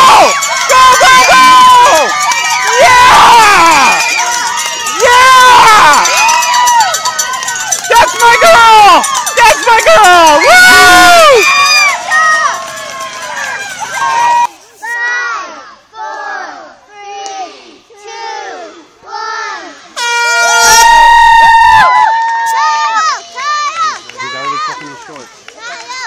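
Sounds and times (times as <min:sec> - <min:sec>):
spectators shouting and cheering: 0:00.0 - 0:26.0
loud horn blast: 0:20.0 - 0:21.0.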